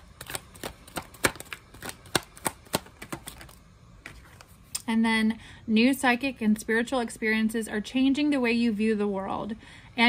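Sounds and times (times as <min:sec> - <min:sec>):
cards being shuffled: 0:00.0 - 0:04.7.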